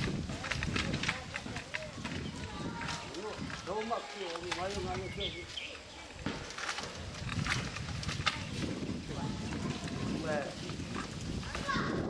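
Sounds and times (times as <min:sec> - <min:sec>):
pole rustling in tree leaves: 0:00.0 - 0:12.0.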